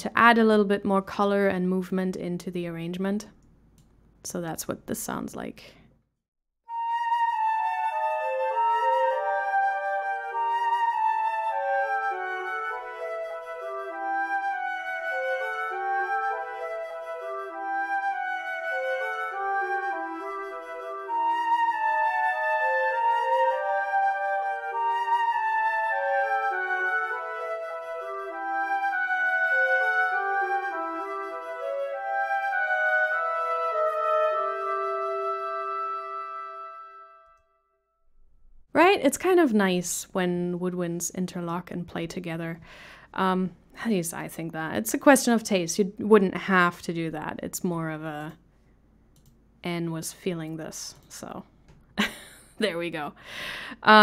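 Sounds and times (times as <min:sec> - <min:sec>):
flute melody: 0:06.6 - 0:37.7
clarinets playing arpeggio: 0:06.7 - 0:37.5.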